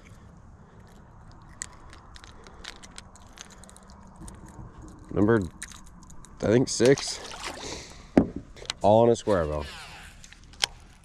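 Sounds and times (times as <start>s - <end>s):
small clicks and scrapes: 0.0s - 6.5s, 8.6s - 11.0s
low steady hum: 0.0s - 11.0s.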